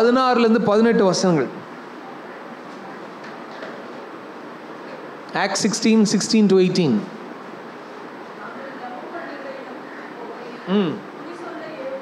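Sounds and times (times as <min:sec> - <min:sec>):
room background hiss: 0:00.0 - 0:12.0.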